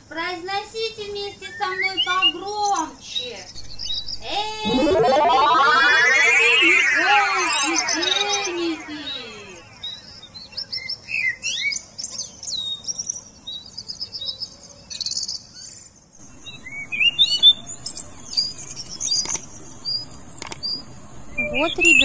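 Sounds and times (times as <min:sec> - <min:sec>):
birds chirping: 0:16.2 - 0:22.0.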